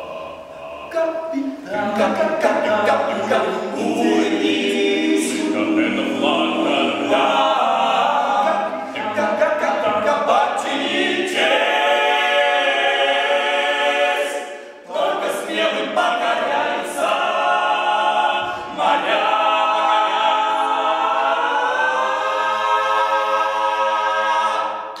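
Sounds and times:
male a cappella harmony singing: 0:00.0 - 0:25.0.

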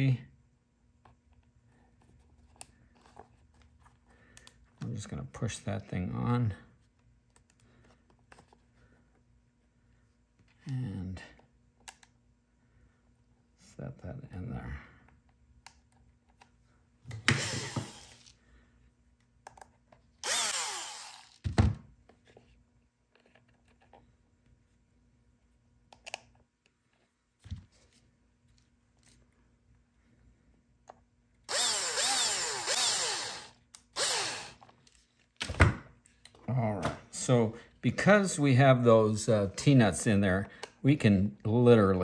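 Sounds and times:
cordless drill driving screws: 0:17.2 - 0:18.3, 0:20.2 - 0:21.4, 0:31.5 - 0:34.6.

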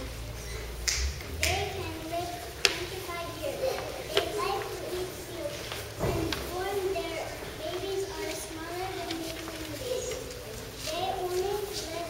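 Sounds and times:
girl reading aloud: 0:00.0 - 0:12.0.

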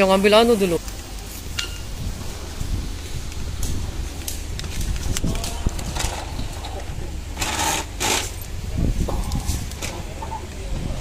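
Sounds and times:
low rumble: 0:00.8 - 0:07.4.

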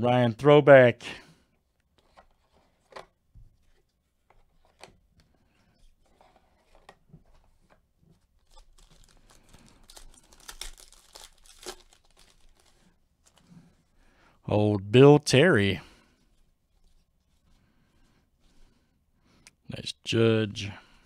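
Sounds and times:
foil wrapper crinkling and tearing: 0:08.4 - 0:13.5.

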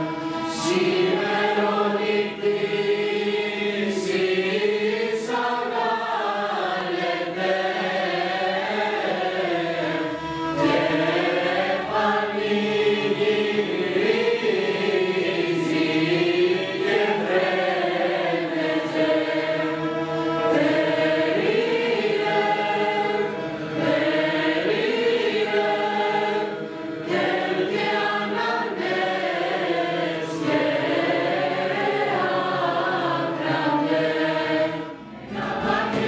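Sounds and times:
traditional instrumental ensemble: 0:00.0 - 0:05.8, 0:06.4 - 0:36.0
youth choir singing carols: 0:00.0 - 0:36.0.

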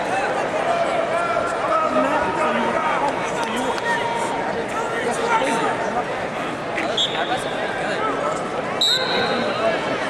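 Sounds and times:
crowd chatter: 0:00.0 - 0:10.0
referee whistle blast: 0:08.8 - 0:09.5.

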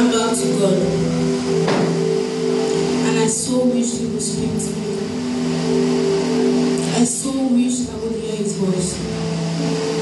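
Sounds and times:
soft keyboard chord: 0:00.0 - 0:10.0.

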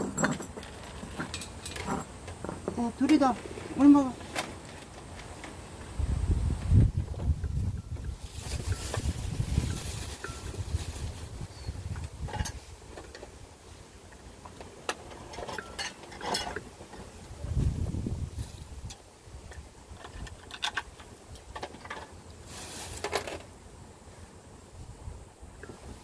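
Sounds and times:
wind rumbling on microphone: 0:05.8 - 0:13.5, 0:17.1 - 0:21.5, 0:24.7 - 0:26.0.

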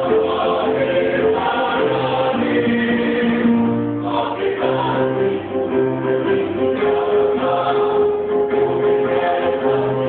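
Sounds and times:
women's choir singing a march: 0:00.0 - 0:10.0.

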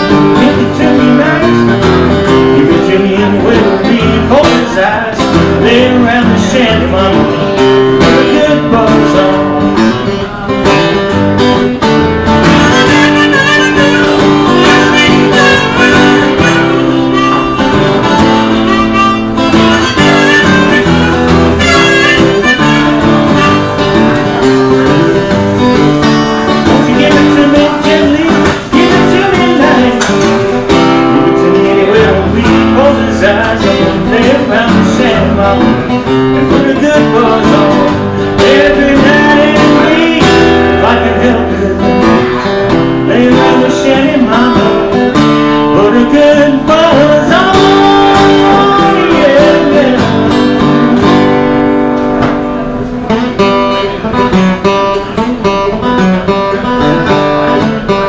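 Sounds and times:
acoustic guitar chords: 0:00.0 - 0:58.0.

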